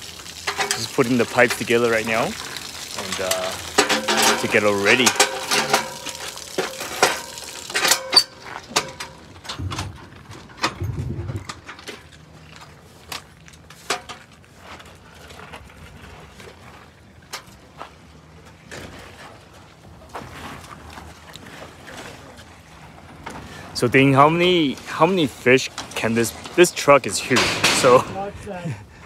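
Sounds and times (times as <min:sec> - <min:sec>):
metal pipes and hoses clattering: 0:00.0 - 0:29.0.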